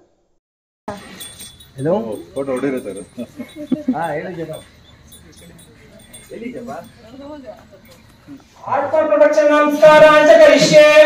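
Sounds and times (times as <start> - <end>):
people talking: 0.9 - 11.0
small bells jingling: 0.9 - 11.0.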